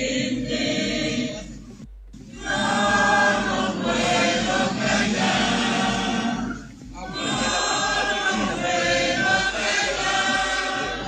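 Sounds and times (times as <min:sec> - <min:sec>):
crowd singing in unison: 0:00.0 - 0:01.7, 0:02.3 - 0:11.0.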